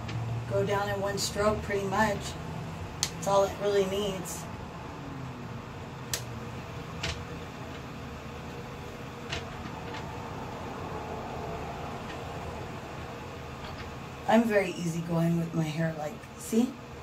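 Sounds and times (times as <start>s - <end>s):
electric fan humming: 0.0s - 17.0s.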